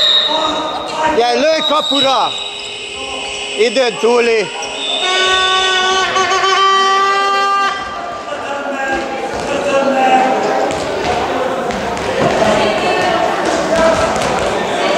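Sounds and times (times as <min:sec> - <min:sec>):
voices and shouting in gym: 0:00.0 - 0:14.9
timing buzzer long tone: 0:01.7 - 0:07.9.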